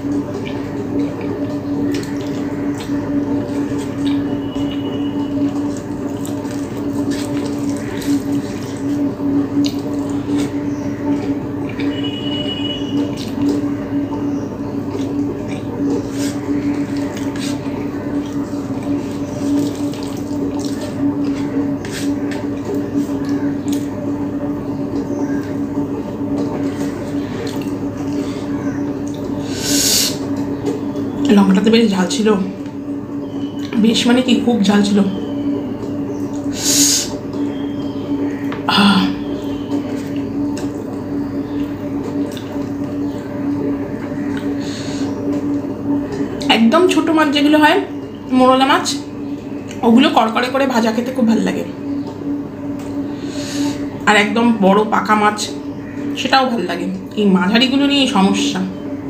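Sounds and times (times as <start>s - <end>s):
fingers mixing food squelching: 0.0s - 31.6s, 35.1s - 47.2s
low steady hum: 0.0s - 59.0s
chewing: 0.1s - 12.0s, 14.9s - 23.9s, 26.3s - 29.4s, 41.6s - 43.0s.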